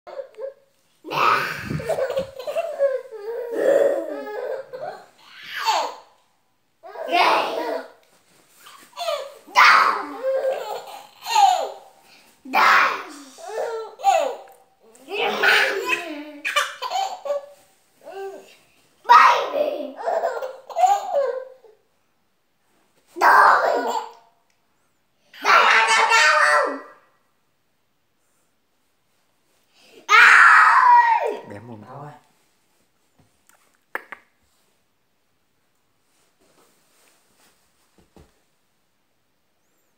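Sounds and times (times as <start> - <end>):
baby laughing: 0.1 - 6.0, 10.0 - 11.8, 13.4 - 14.5, 15.2 - 18.4, 19.6 - 21.6.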